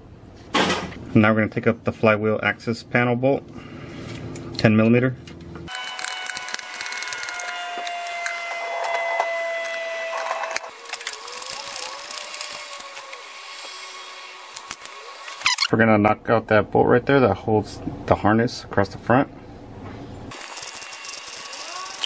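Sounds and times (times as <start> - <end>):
hand ratchet clicking: 10.5 - 13.2, 20.3 - 22.0.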